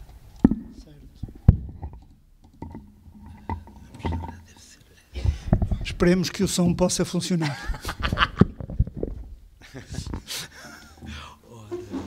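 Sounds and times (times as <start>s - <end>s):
microphone handling knocks: 0.5s - 4.4s, 5.2s - 7.0s, 7.9s - 10.3s.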